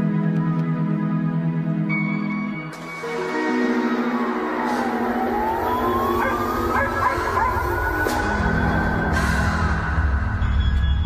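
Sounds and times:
held synth notes: 0:00.0 - 0:11.0.

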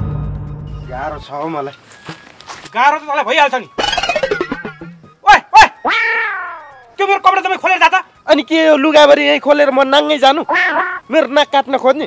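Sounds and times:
long drawn-out cry: 0:05.5 - 0:06.8.

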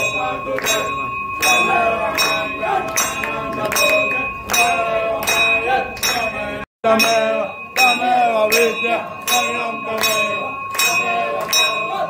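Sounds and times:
temple bell ringing: 0:00.0 - 0:12.0.

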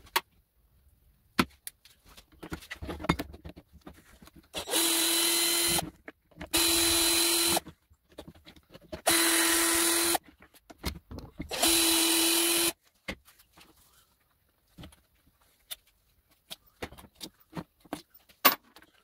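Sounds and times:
cordless drill running: 0:04.6 - 0:05.8, 0:06.5 - 0:07.6, 0:09.1 - 0:10.2, 0:11.5 - 0:12.8.

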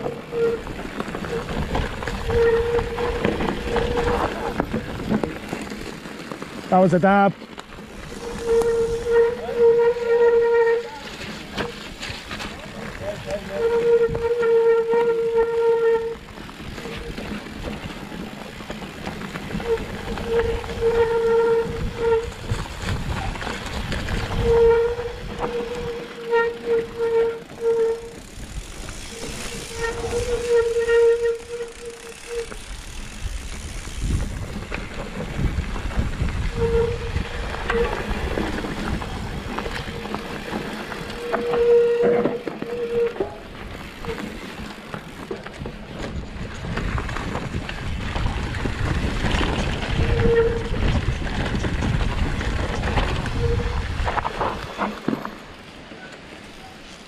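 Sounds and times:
bike freewheel hub buzzing: 0:00.0 - 0:55.0
tyres rumbling on dirt trail: 0:00.0 - 0:57.0
wind on microphone: 0:08.0 - 0:10.8, 0:13.0 - 0:16.2, 0:19.5 - 0:43.1, 0:46.2 - 0:54.8.

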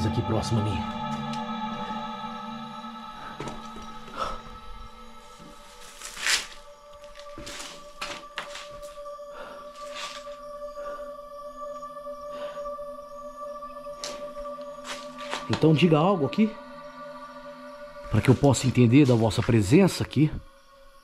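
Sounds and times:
droning music: 0:00.0 - 0:21.0
scuffing or knocking noises: 0:07.2 - 0:09.0.

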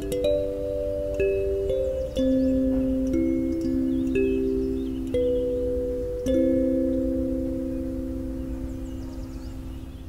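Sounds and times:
kalimba slow melody: 0:00.0 - 0:10.0.

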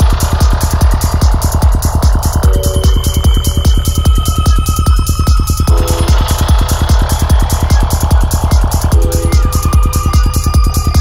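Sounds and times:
electronic trance music: 0:00.0 - 0:11.0.

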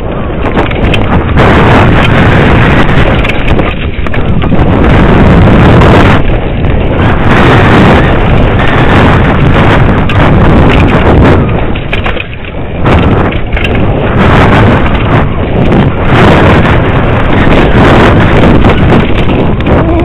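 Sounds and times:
mountain bike clattering and rattling: 0:00.0 - 0:20.0
wind buffeting microphone: 0:00.0 - 0:20.0.

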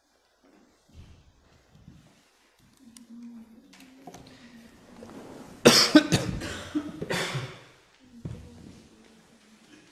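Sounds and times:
man coughing: 0:05.6 - 0:07.6.

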